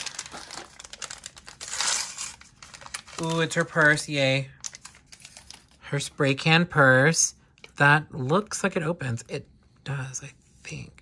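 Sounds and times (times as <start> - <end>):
plastic packaging crinkling and tearing: 0.0 - 5.8.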